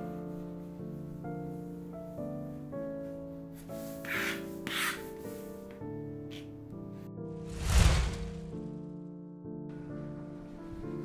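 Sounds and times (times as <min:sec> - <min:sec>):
soft piano music: 0:00.0 - 0:07.5, 0:08.3 - 0:11.0.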